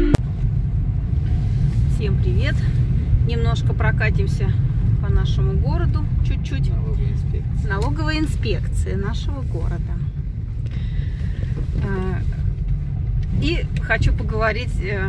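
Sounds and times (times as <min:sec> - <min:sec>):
car driving rumble: 0:00.0 - 0:15.0
person talking: 0:11.8 - 0:12.3.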